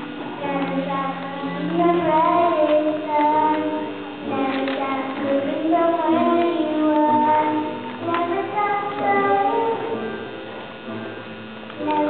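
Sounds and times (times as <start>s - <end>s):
girl singing into a microphone: 0.2s - 10.2s, 11.8s - 12.0s.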